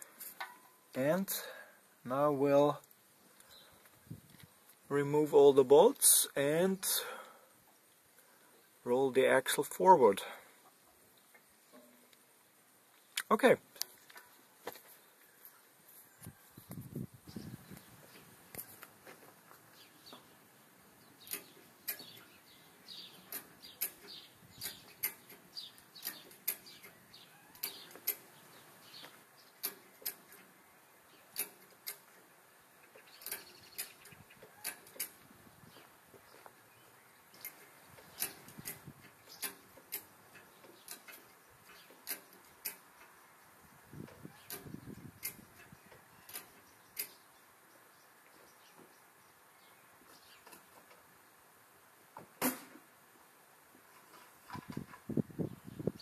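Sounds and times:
wrench clicking on bolts: 31.4 - 32.1, 38.2 - 41.3, 42.0 - 42.8.

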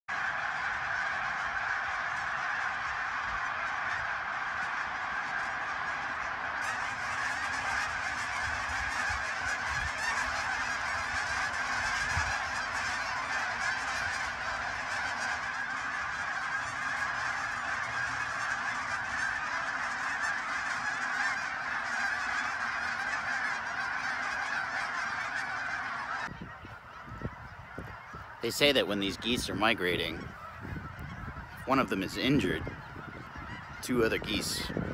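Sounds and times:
geese honking: 0.1 - 34.9.

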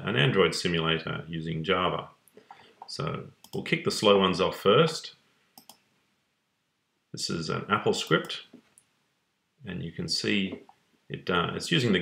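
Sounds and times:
faint computer mouse clicks: 5.6 - 5.8.

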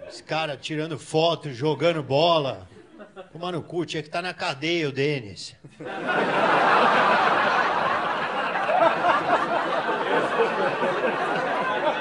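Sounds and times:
people laughing: 2.7 - 3.4, 5.6 - 12.0.

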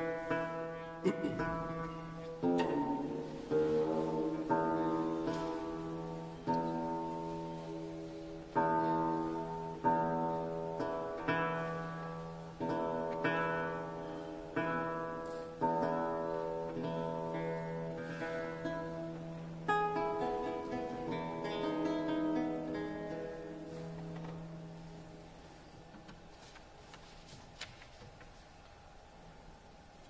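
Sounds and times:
lute plucked chords: 0.0 - 25.5.

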